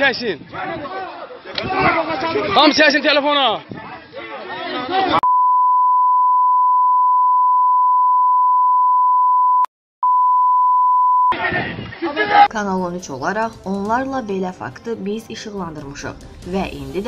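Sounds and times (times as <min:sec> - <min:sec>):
censor bleep tone: 0:05.2 - 0:11.4.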